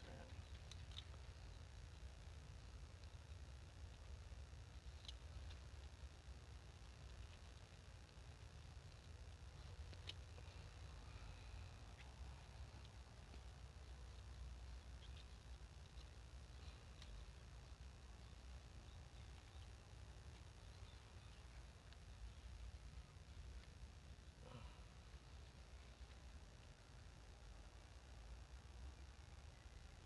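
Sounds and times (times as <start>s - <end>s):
faint low rumble: 0.0s - 30.0s.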